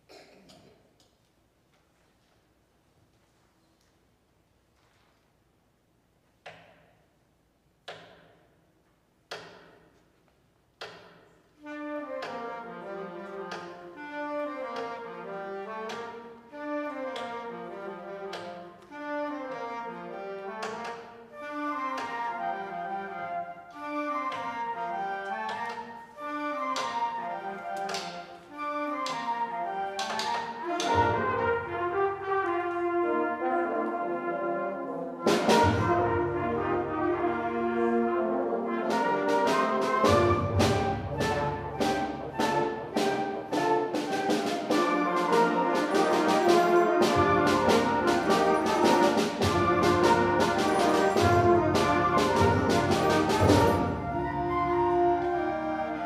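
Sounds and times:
brass playing brisk melody: 0:28.6 - 0:56.0
concert band playing: 0:28.9 - 0:34.1, 0:35.1 - 0:56.0.

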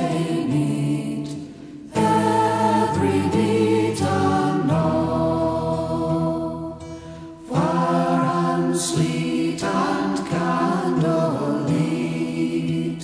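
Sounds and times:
voices singing in close harmony: 0:00.0 - 0:13.0.

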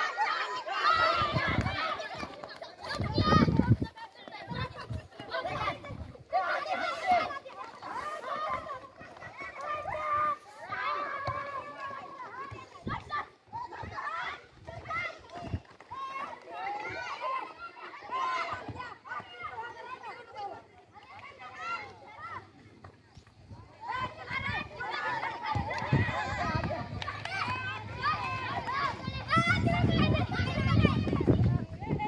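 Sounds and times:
children shouting: 0:00.0 - 0:22.6, 0:23.5 - 0:32.0.

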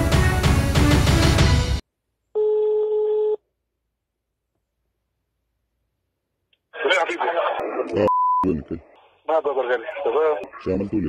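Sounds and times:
telephone ringing tone: 0:02.4 - 0:03.4.

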